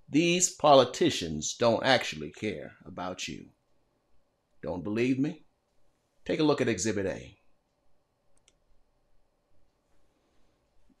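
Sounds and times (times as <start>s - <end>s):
faint clicks: 7.6s - 8.6s.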